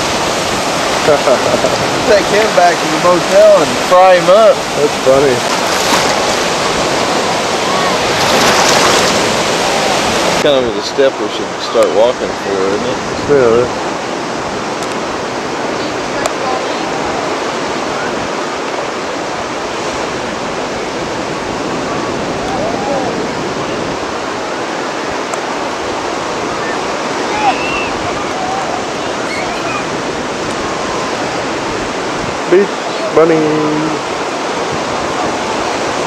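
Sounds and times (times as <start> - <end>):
ocean surf washing onto beach: 0.0 - 36.0.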